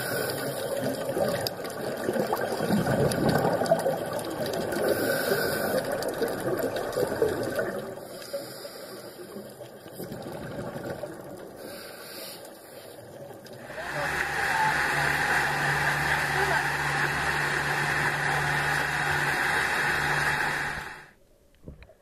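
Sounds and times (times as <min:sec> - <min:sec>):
muffled underwater sound: 0:12.8 - 0:21.9
rushing water: 0:13.2 - 0:21.1
boat engine humming: 0:13.5 - 0:21.2.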